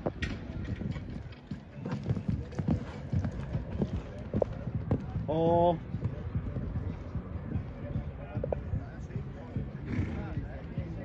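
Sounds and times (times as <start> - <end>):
horse hoofbeats on sand: 0.6 - 7.7.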